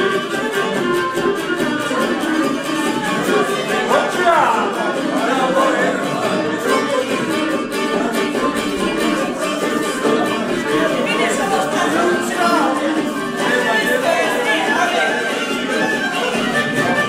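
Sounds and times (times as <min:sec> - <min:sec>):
fiddle playing tune: 0:00.0 - 0:17.0
strummed lute: 0:00.0 - 0:17.0.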